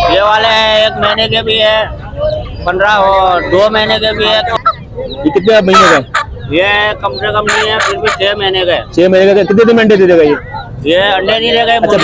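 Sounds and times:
chicken squawk: 5.6 - 6.4.

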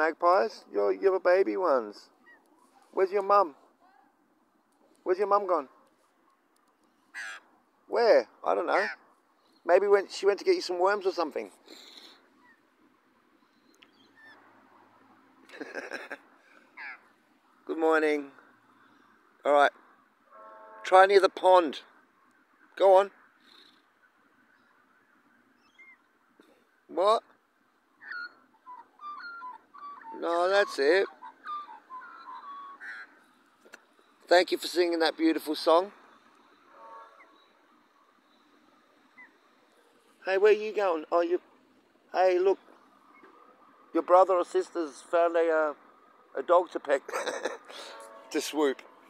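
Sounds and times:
magpie call: 7.1 - 7.5, 16.7 - 17.1, 25.6 - 26.1, 28.0 - 33.3, 36.8 - 39.6
magpie whistling: 25.6 - 26.0, 28.0 - 30.2, 31.1 - 33.2.

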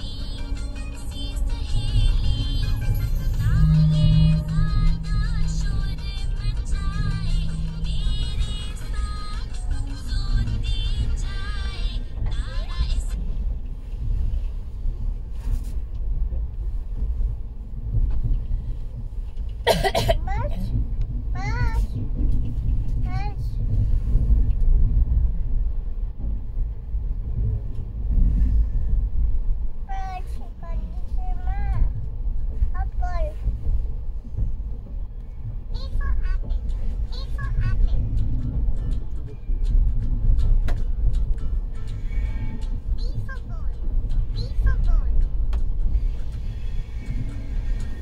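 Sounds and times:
train wheels rumbling on track: 0.0 - 48.0.

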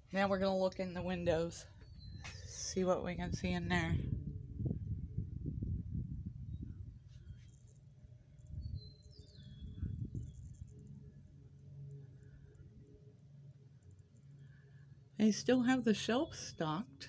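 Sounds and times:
low uneven rumble: 0.0 - 17.0.

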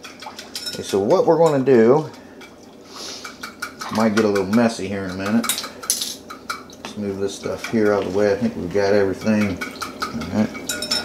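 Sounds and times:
metal utensil stirring liquid: 0.0 - 11.0
utensil clinking against bowl: 0.0 - 11.0.

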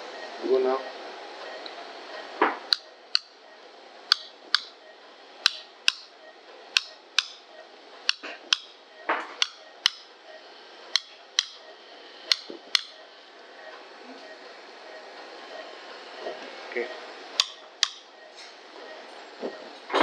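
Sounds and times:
sharp clicks in pairs: 2.7 - 3.3, 4.1 - 4.7, 5.4 - 6.1, 6.8 - 7.4, 8.1 - 8.7, 9.4 - 10.0, 10.9 - 11.6, 12.3 - 12.9, 17.4 - 18.0.

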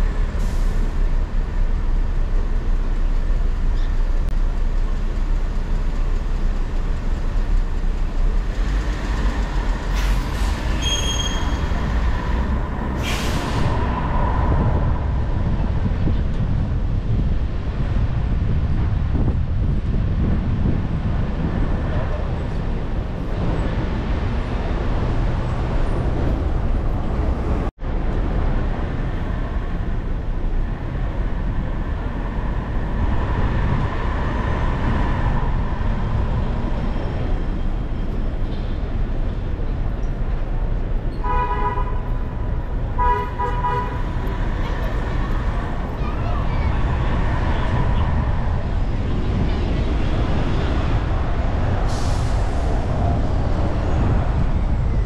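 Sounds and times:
low rumble of city traffic: 0.0 - 55.0
car horn honking: 43.0 - 44.0.

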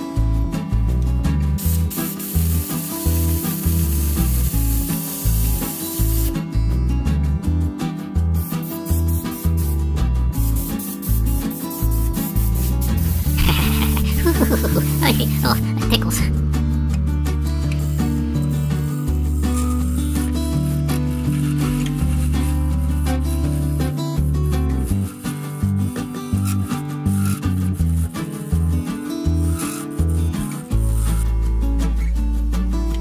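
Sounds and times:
background music with bass line: 0.0 - 33.0.

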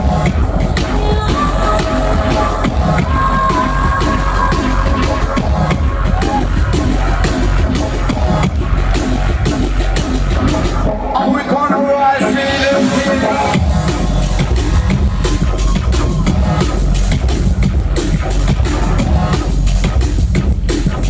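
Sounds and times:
breakbeat drums: 0.0 - 21.0
heavy sub-bass: 0.0 - 21.0.

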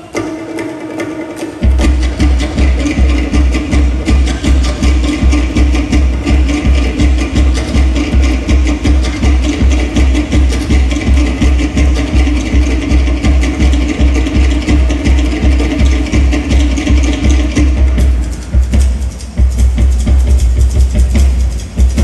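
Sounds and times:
low drum beat: 1.6 - 22.0.

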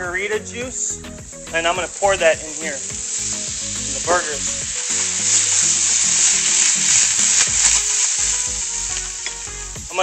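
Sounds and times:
patties sizzling in a frying pan: 0.0 - 10.0
vegetables sauteing: 0.0 - 10.0.

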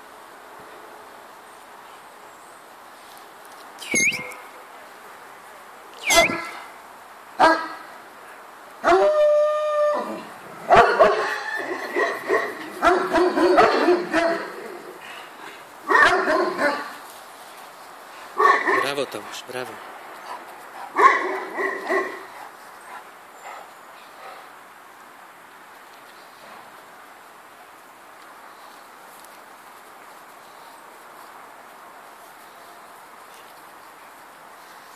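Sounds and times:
dog whining: 3.8 - 4.4, 6.0 - 6.7
dog yelps: 3.8 - 4.4, 6.0 - 6.7, 8.8 - 14.5, 15.9 - 16.9, 21.0 - 22.2
dogs barking: 10.7 - 14.6, 15.9 - 17.0, 18.4 - 19.0, 20.8 - 22.5.

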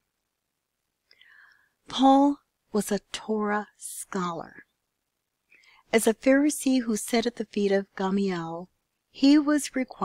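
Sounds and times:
faint breath drawn in: 1.1 - 1.8
person speaking: 1.8 - 4.7, 5.9 - 10.0.

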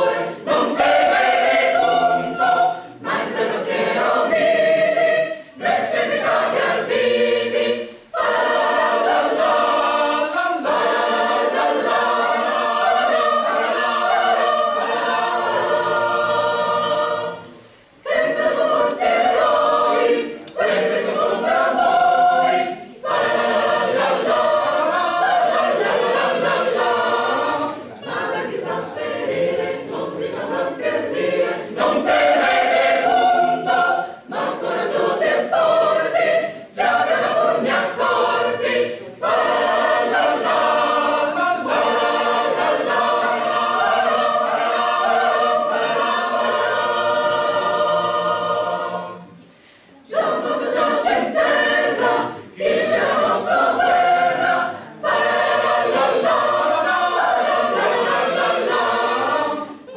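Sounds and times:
choir singing a cappella: 0.0 - 59.9
singers breathing: 49.4 - 50.1.

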